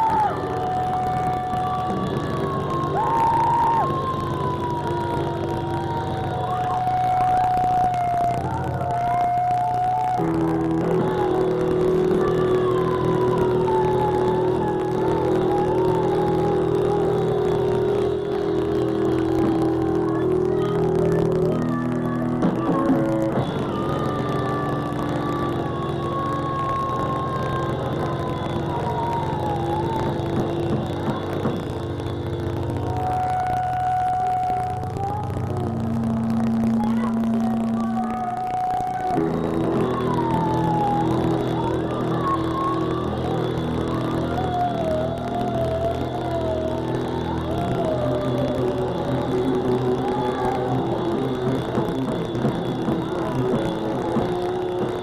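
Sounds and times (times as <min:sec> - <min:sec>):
woman singing: 0:00.0 - 0:55.0.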